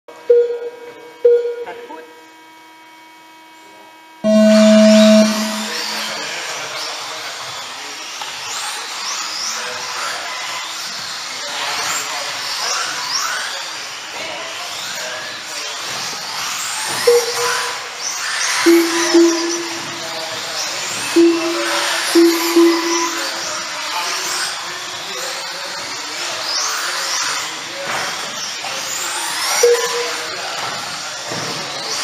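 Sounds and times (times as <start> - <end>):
short electronic beeps: 0.3 - 1.7, 4.3 - 6.2, 17.1 - 17.9, 18.7 - 20.0, 21.2 - 23.4, 29.6 - 30.2
loud start tone: 4.2 - 6.4, 17.1 - 17.9, 18.7 - 20.1, 21.2 - 23.5, 29.6 - 30.2
steady hum: 4.3 - 6.3
rc car motors whining: 5.8 - 21.2, 21.8 - 32.0.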